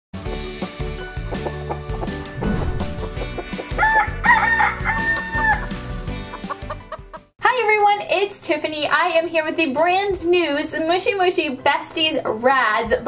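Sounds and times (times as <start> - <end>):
music jingle: 2.4 - 4.6
rooster crowing: 3.7 - 5.8
chicken clucking: 6.3 - 7.2
woman speaking: 7.4 - 13.0.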